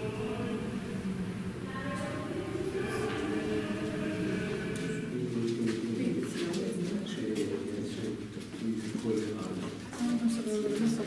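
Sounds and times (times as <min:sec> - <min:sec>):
muffled voices talking: 0:00.0 - 0:11.0.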